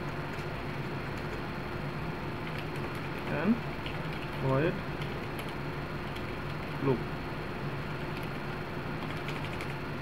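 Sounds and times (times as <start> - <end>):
low hum and hiss: 0.0 - 10.0
computer keyboard typing: 0.3 - 1.4, 2.4 - 6.8, 7.9 - 9.8.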